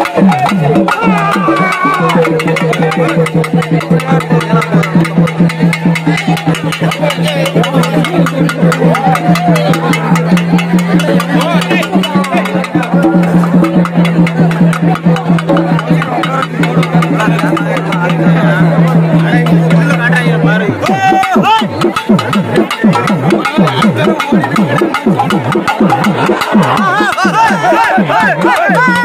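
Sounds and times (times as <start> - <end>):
crowd voices: 0.0 - 29.0
drums beating fast rhythm: 0.0 - 29.0.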